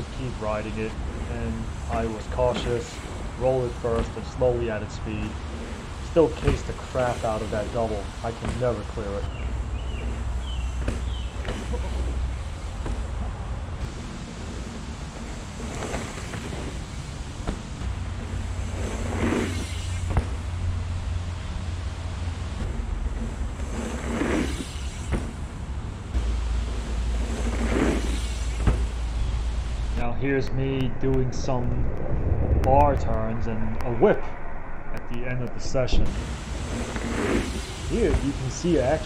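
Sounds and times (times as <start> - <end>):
bike tyres rolling over dirt: 0.0 - 34.2, 36.1 - 39.0
wind rumble on microphone: 0.0 - 39.0.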